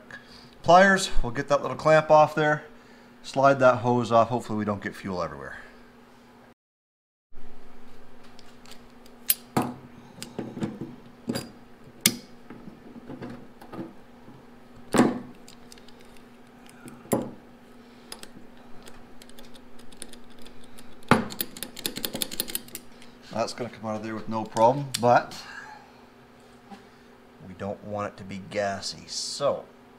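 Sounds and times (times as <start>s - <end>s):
steady low hum: 7.4s - 29.9s.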